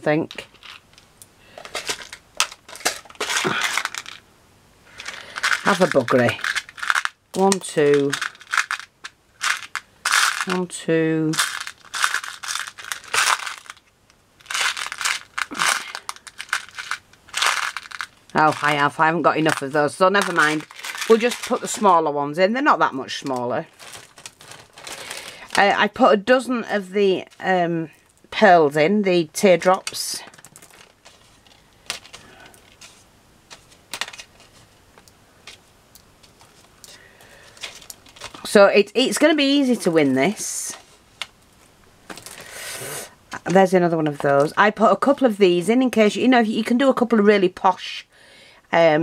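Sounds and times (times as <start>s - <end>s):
plastic bag crinkling: 0.0s - 4.2s, 4.9s - 28.4s, 29.4s - 42.6s
beads clicking: 0.3s - 4.2s, 4.9s - 22.0s, 23.2s - 25.8s.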